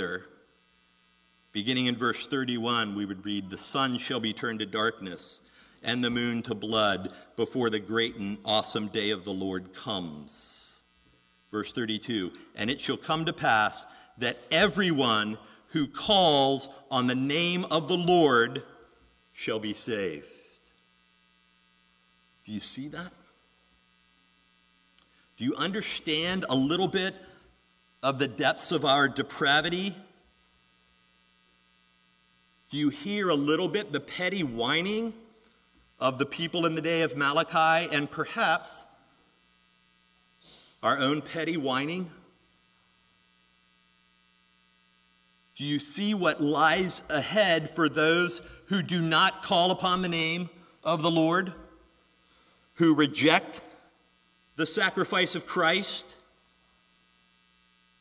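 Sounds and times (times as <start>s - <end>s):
man's voice: 0.0s - 0.3s, 1.6s - 10.8s, 11.6s - 18.7s, 19.4s - 20.4s, 22.5s - 23.2s, 25.4s - 27.3s, 28.0s - 30.0s, 32.7s - 35.2s, 36.0s - 38.9s, 40.8s - 42.2s, 45.6s - 51.7s, 52.8s - 53.7s, 54.6s - 56.2s
faint steady hum with hiss: 0.0s - 58.0s.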